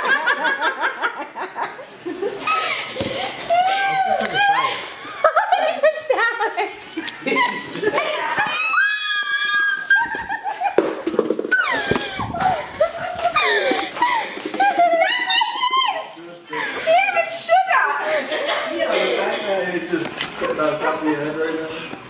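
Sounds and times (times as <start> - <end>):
people laughing and shouting: 0.0 - 22.0
high-pitched scream: 8.5 - 10.0.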